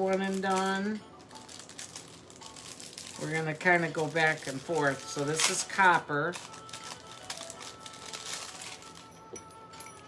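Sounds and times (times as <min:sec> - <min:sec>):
plastic bag crinkling: 0:00.0 - 0:09.2
quiet background music: 0:00.0 - 0:10.0.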